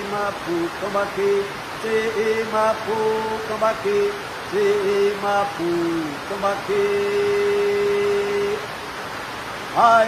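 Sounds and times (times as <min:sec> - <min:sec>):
man chanting a sung note: 0:00.0 - 0:08.6
steady hiss: 0:00.0 - 0:10.0.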